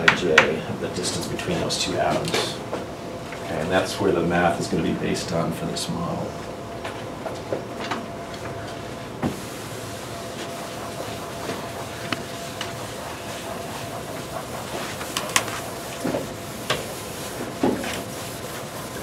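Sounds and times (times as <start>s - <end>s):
room hum and hiss: 0.0s - 19.0s
eraser wiping blackboard: 9.3s - 19.0s.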